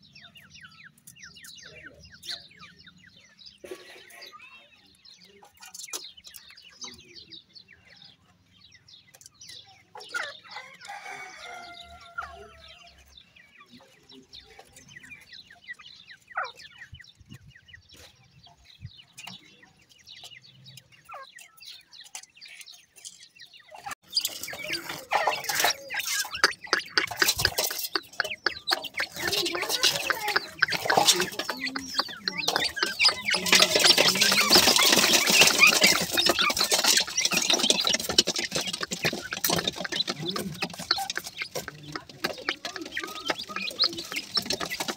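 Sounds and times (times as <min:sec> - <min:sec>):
chicks calling: 0:00.0 - 0:44.9
pecking taps and scratching: 0:23.9 - 0:44.9.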